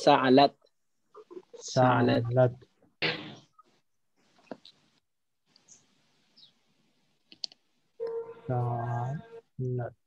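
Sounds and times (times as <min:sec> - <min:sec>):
faint hiss: 0:04.3 - 0:07.3
computer mouse clicks: 0:07.2 - 0:07.6.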